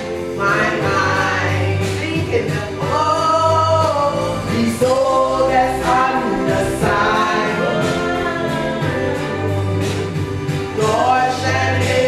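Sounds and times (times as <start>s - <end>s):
musical accompaniment: 0.0s - 12.0s
woman singing into a microphone: 0.2s - 12.0s.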